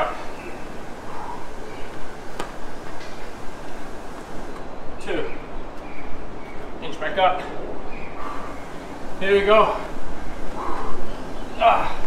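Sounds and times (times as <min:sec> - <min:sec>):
open-air background noise: 0:00.0 - 0:12.0.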